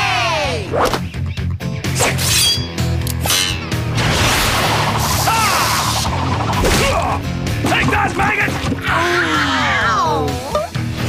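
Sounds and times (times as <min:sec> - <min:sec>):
background music: 0:00.0 - 0:11.0
cartoon whacks smashes and whooshes: 0:06.5 - 0:07.2.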